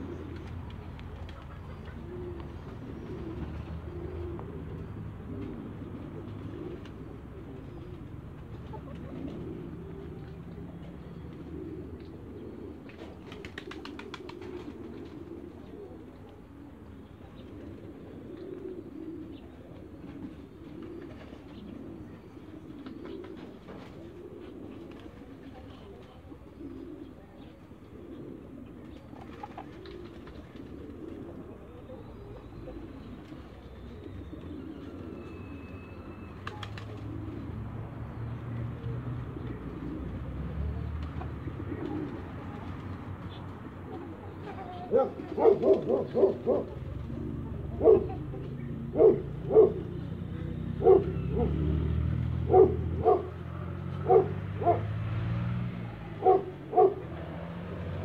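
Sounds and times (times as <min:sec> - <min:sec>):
ducks cooing: 0:00.0 - 0:16.1, 0:39.3 - 0:42.7, 0:43.9 - 0:55.2.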